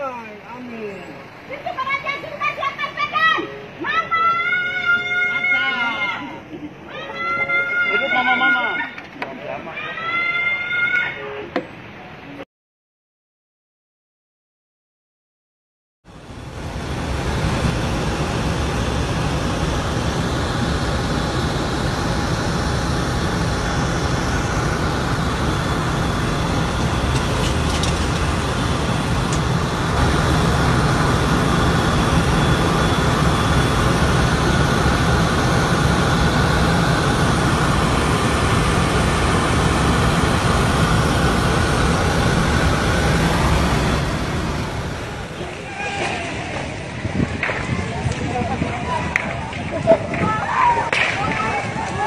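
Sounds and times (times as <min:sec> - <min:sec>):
aircraft engines droning in cabin: 0:00.0 - 0:11.1, 0:16.1 - 0:52.0
high engine whine: 0:16.1 - 0:52.0.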